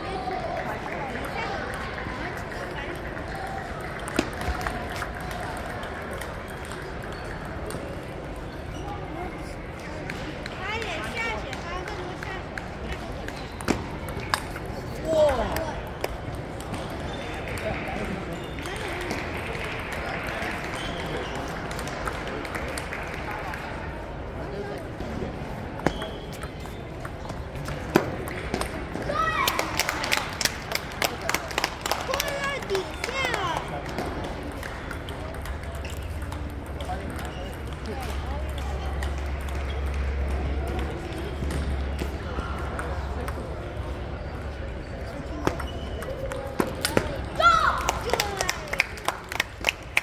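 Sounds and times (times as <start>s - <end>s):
background chatter: 0.0s - 50.0s.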